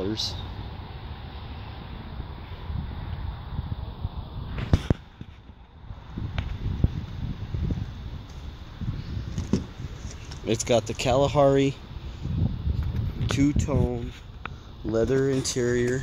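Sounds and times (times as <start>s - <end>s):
microphone handling and wind rumble: 2.2s - 16.0s.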